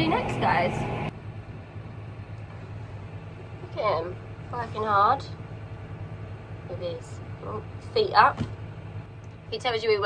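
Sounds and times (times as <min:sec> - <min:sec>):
tractor engine drone: 0:00.0 - 0:10.0.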